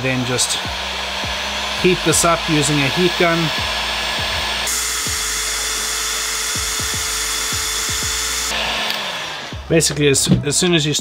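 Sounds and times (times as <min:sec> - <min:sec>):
heat gun blowing with hiss: 0:00.0 - 0:09.9.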